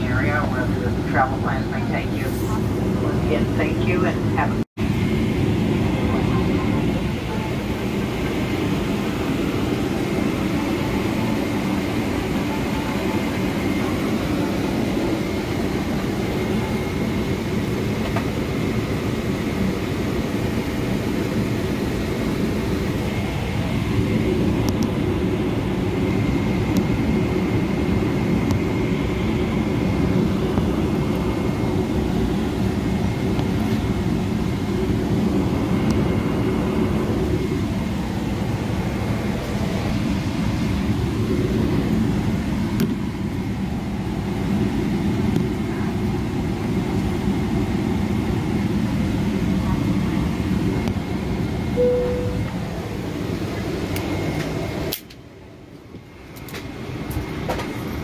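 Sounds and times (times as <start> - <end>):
faint high whine: 51.5 - 53.2.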